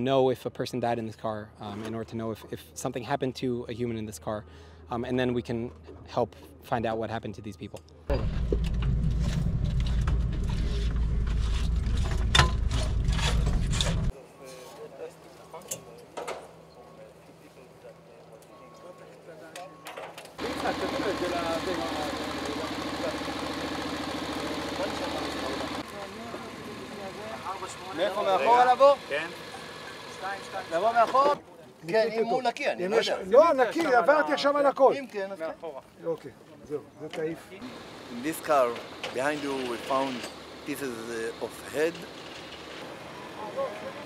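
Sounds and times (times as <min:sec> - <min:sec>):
outdoor background noise: 0:00.0 - 0:44.0
distant voices talking: 0:14.1 - 0:31.8
motor running with fast pulse: 0:20.4 - 0:31.3.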